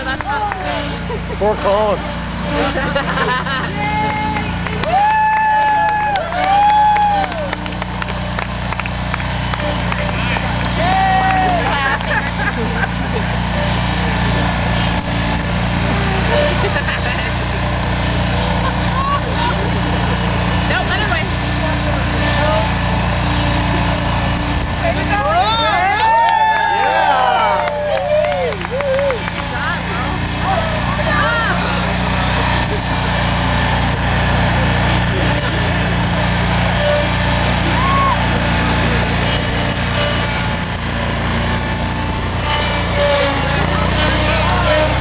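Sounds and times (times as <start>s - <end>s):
people talking: 0.0s - 5.0s, 9.6s - 14.7s, 18.3s - 23.0s, 23.6s - 26.1s, 26.8s - 40.3s, 43.1s - 45.0s
lawnmower engine running: 0.0s - 45.0s
people laughing and cheering: 0.0s - 45.0s
long woo shouts: 3.9s - 7.6s, 10.8s - 11.7s, 25.7s - 29.3s, 37.6s - 38.4s.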